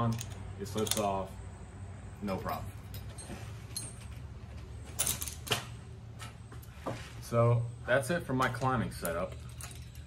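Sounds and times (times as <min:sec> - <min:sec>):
carabiners clinking: 0:00.0 - 0:01.4, 0:02.2 - 0:05.8, 0:08.4 - 0:10.0.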